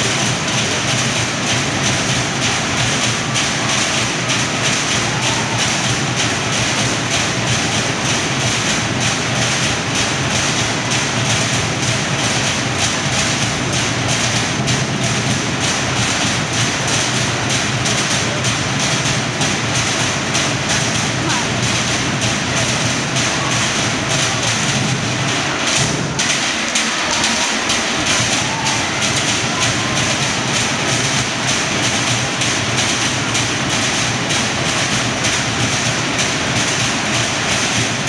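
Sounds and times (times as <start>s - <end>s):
fast wooden log drumming: 0.0s - 38.0s.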